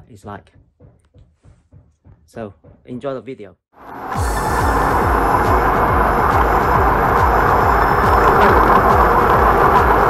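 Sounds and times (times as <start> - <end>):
music: 0.0 - 3.0, 3.8 - 10.0
wind and road rushing noise: 3.8 - 10.0.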